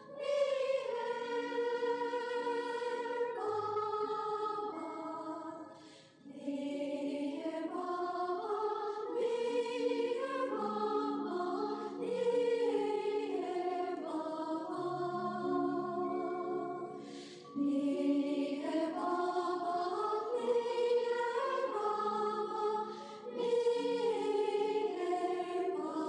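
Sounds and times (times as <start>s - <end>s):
choir singing long notes: 0.0s - 26.0s.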